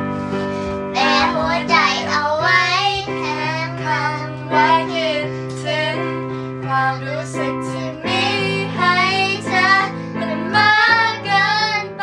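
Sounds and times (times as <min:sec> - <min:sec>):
girl singing pop song: 0:00.1 - 0:12.0.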